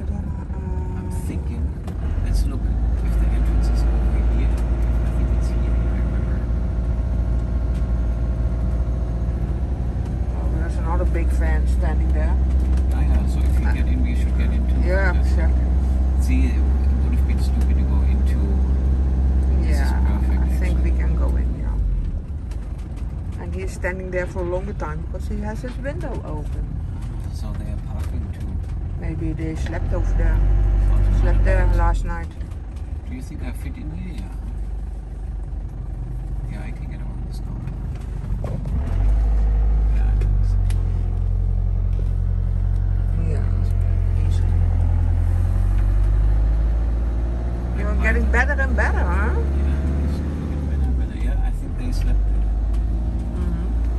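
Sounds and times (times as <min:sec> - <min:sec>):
engine and road rumble: 0:00.0 - 0:53.9.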